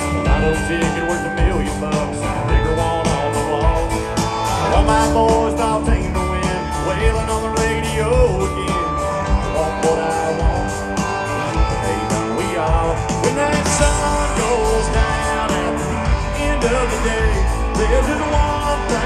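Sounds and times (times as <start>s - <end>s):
country band playing through a pa: 0.0s - 19.0s
sung lead vocal: 0.0s - 19.0s.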